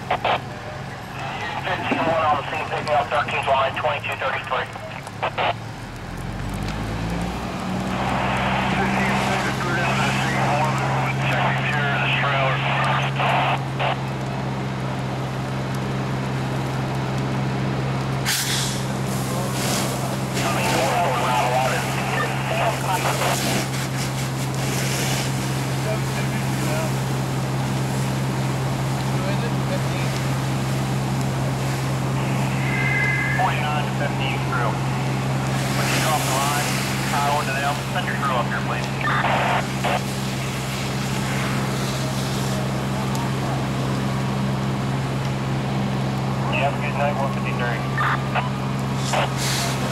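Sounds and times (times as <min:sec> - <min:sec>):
fire and hose hissing: 0:00.0 - 0:49.9
fire engine pump humming: 0:00.0 - 0:49.9.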